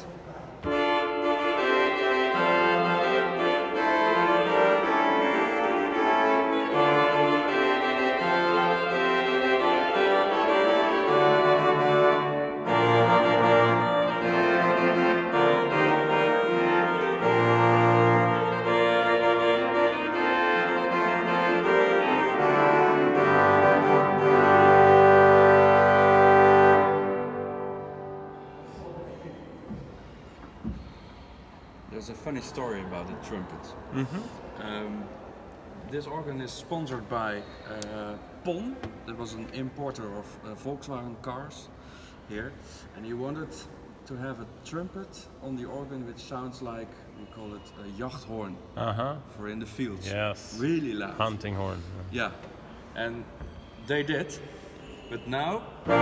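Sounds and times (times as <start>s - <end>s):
pipe organ chords: 0.7s - 28.6s, 55.8s - 56.0s.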